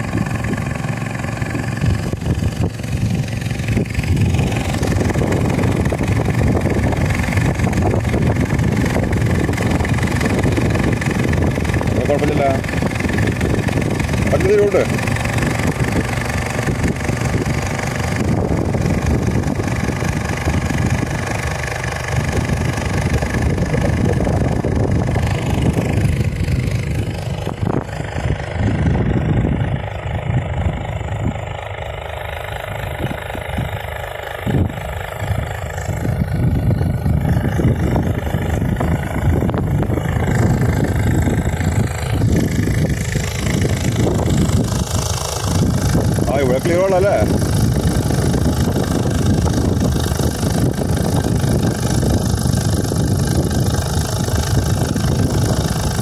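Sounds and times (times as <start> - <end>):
outboard motor running: 0.0 - 56.0.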